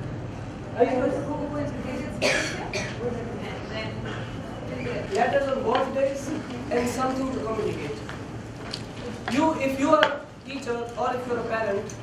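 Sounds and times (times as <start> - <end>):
person coughing: 2.2 - 3.0.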